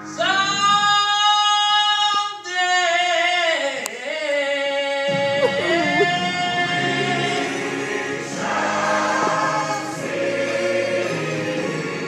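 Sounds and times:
choir singing: 5.1 - 12.0.

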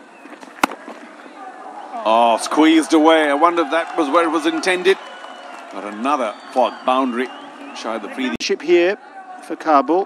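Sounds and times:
murmur of stadium crowd: 0.0 - 10.0
cricket bat striking ball: 0.6 - 1.0.

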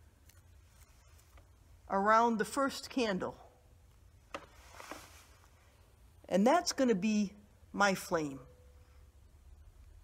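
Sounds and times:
soft ribbon rustle: 0.0 - 1.9, 4.5 - 6.0.

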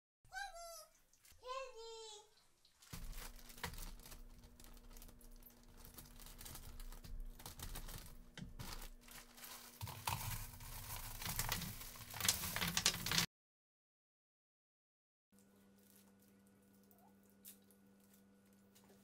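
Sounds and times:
plastic bag crinkling: 2.8 - 13.3
wrapped candy bars pouring: 2.8 - 13.3.

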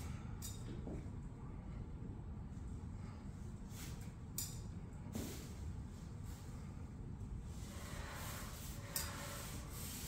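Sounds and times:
paint roller rubbing hiss: 7.5 - 10.0.

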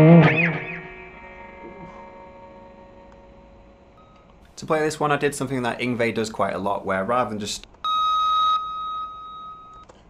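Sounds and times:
electric guitar high note: 0.0 - 4.0.

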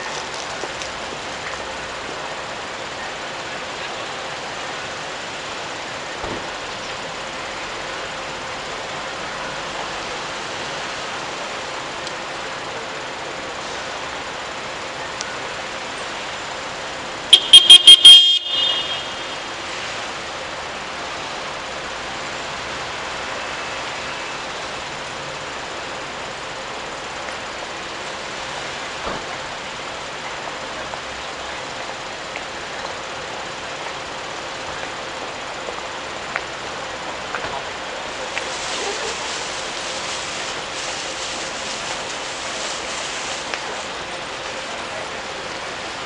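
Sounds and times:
city street background noise: 0.0 - 46.0
high-pitched toots: 17.4 - 19.2.

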